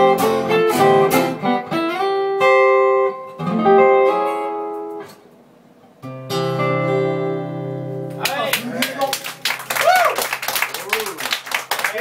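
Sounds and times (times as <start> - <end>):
audience clapping: 8.1 - 12.0.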